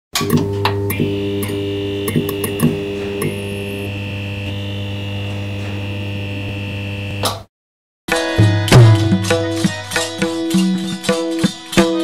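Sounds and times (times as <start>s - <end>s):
neon sign electrical buzzing: 0.2s - 7.5s
thin high whine: 1.1s - 7.4s.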